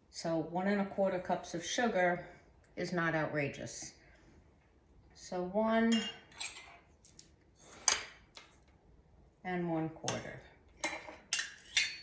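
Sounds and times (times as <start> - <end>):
metal clinking against glass: 10.8 - 12.0.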